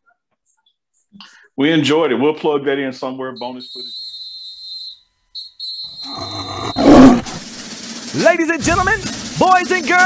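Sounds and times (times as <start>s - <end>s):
high whistling tone: 3.3s - 7.4s
tiger roar: 6.0s - 7.5s.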